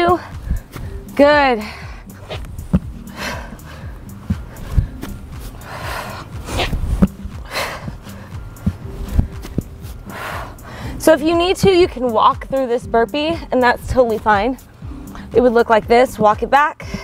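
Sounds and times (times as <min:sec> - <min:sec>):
hard breathing with puffed exhales: 0:00.0 - 0:11.0, 0:14.6 - 0:15.4, 0:16.8 - 0:17.0
background music: 0:00.0 - 0:17.0
feet thudding on exercise mat: 0:01.9 - 0:10.5.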